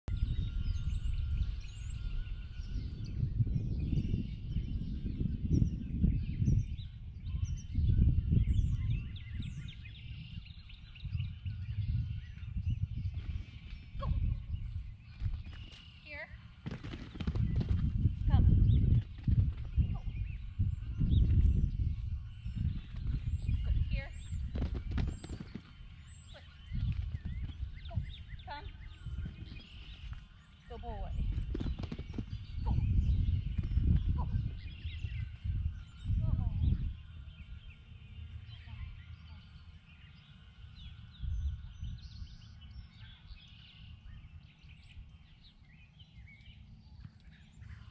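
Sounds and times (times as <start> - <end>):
birds chirping: 0.0 - 47.9
wind buffeting microphone: 0.0 - 47.9.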